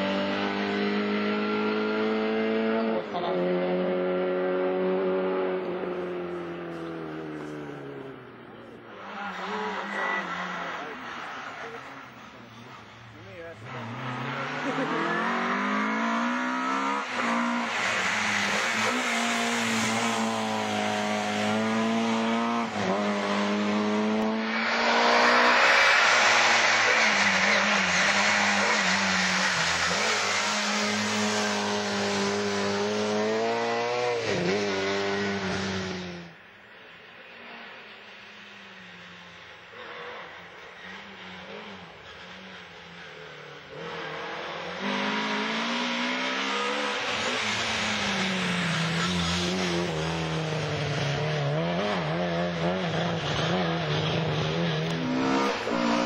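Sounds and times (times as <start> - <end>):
rally car engine revving: 0.0 - 36.4, 39.7 - 56.0.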